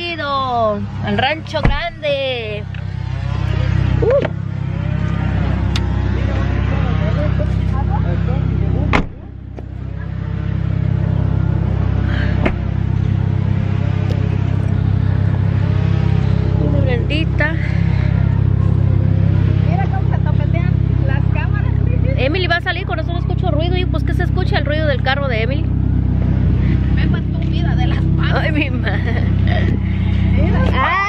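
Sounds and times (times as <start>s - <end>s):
car engine idling: 0.0s - 31.0s.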